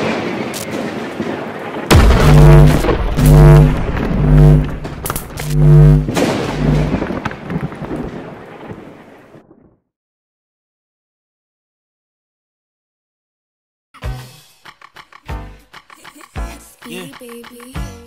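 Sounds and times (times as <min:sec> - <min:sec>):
crackling thunder-like rumble: 0:00.0 - 0:09.7
low brass-like stinger: 0:01.9 - 0:07.0
booming bass hits: 0:01.9 - 0:07.2.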